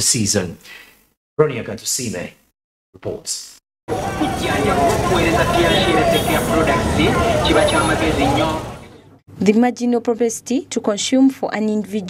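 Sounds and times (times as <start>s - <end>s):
motorcycles passing: 3.9s - 9.2s
traffic rumble: 3.9s - 9.2s
voices chattering: 3.9s - 9.2s.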